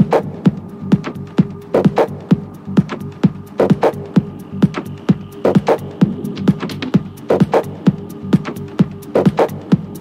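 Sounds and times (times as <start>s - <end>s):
techno kick drum: 0.0s - 10.0s.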